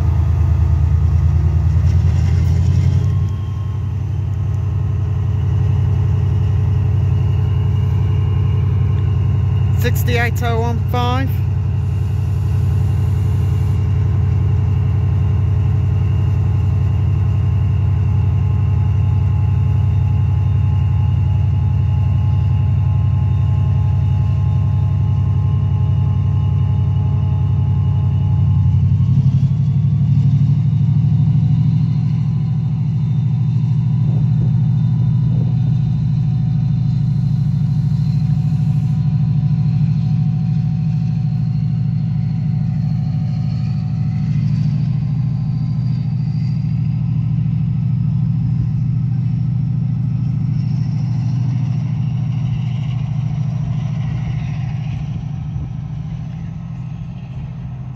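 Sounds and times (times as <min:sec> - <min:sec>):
diesel locomotive engine drone: 0:00.0 - 0:57.9.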